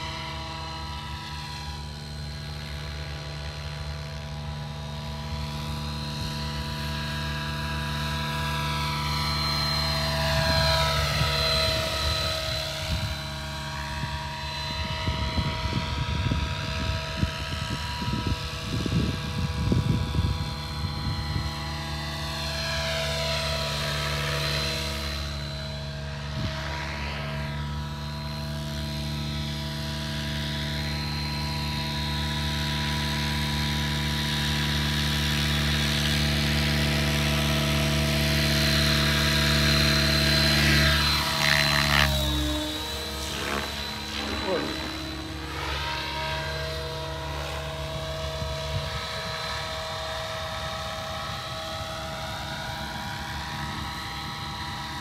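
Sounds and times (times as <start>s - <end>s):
rc helicopter motor whine: 0.0s - 55.0s.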